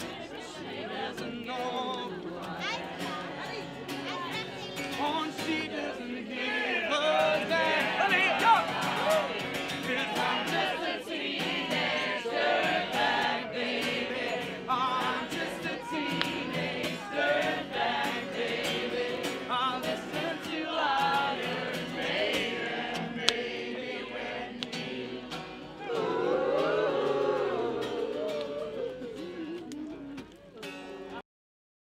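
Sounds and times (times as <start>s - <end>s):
strummed acoustic guitar: 0.0s - 28.2s, 29.0s - 31.2s
crowd singing along: 0.0s - 31.2s.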